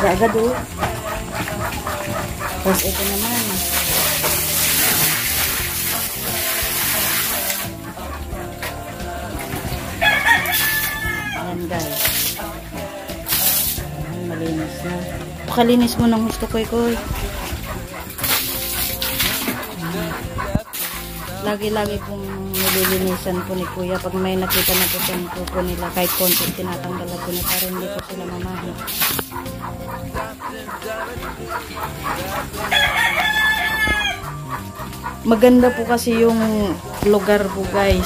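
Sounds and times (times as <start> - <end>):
background music: 0.0 - 38.0
pig noises: 0.0 - 38.0
piglets feeding at trough: 0.0 - 38.0
rooster crowing: 3.8 - 13.2, 27.7 - 35.4.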